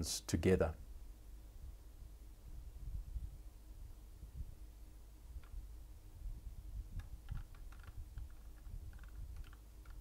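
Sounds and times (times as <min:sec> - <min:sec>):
low steady hum: 0:00.0 - 0:10.0
quick light clicks: 0:07.0 - 0:10.0.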